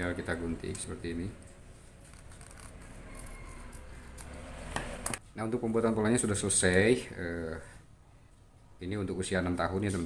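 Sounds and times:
scissors cutting paper: 2.0s - 5.1s.

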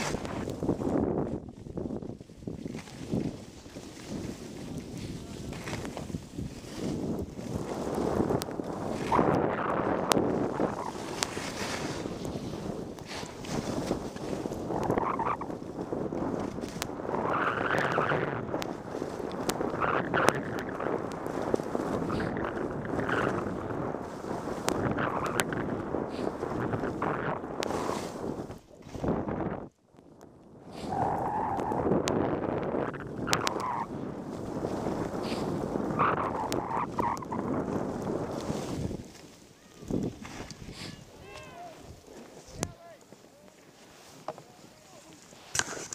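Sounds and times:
skis scraping over snow: 0.0s - 29.6s, 30.7s - 45.9s
wind on microphone: 0.0s - 42.8s.

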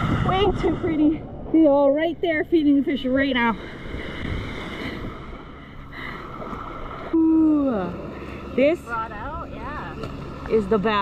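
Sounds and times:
wind rumbling on microphone: 0.0s - 5.7s
distant motorboat engine drone: 0.0s - 11.0s.

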